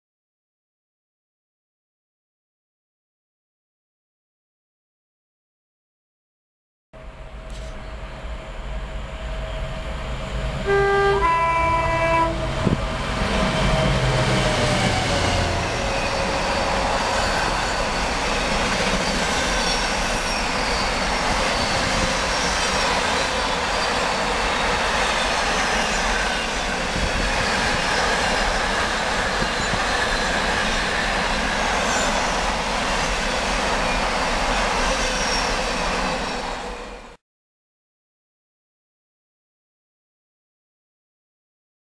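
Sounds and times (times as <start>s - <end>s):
locomotive passing at speed: 7.0s - 37.1s
two-tone train horn: 10.6s - 12.8s.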